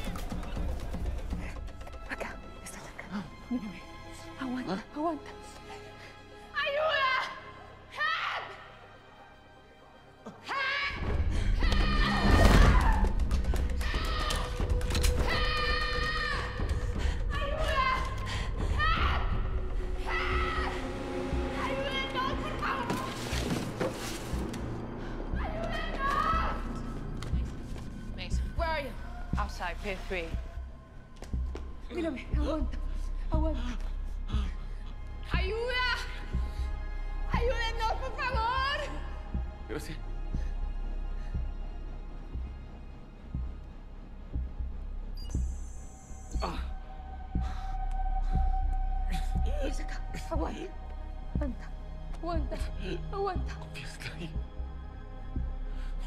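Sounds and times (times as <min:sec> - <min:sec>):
low heartbeat-like thuds: 0:26.4 - 0:35.7, 0:39.3 - 0:55.9.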